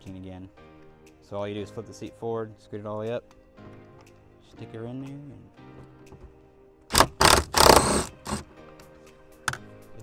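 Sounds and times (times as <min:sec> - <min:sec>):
impact driver hammering: 0:06.9 - 0:08.4.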